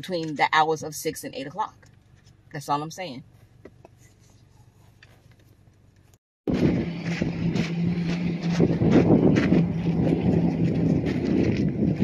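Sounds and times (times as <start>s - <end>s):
steady low hum: 1.6s - 12.0s
wind buffeting microphone: 6.5s - 12.0s.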